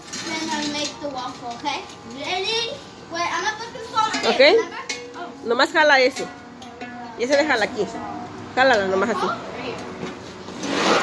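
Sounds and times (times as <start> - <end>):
young children talking: 0.2 - 5.4, 7.0 - 10.0
woman talking: 4.1 - 6.3, 7.2 - 9.8.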